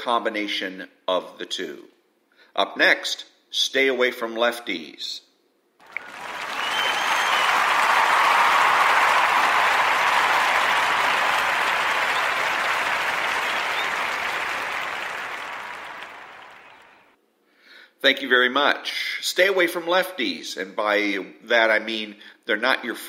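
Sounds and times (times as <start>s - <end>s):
audience applause: 5.8s - 17.2s.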